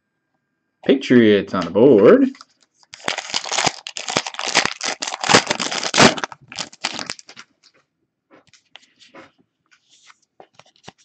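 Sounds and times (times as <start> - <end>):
foil wrapper tearing and crinkling: 2.3 - 7.4
cards rustling and ticking: 2.3 - 7.5.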